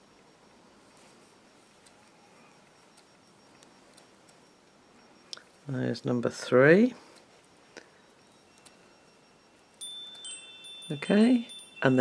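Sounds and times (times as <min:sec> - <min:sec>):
chime ringing high tones: 0:07.9 - 0:12.0.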